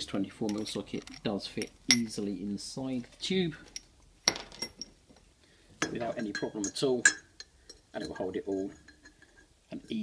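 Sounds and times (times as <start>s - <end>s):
metal tool clinking: 0.3s - 2.4s, 3.0s - 9.5s.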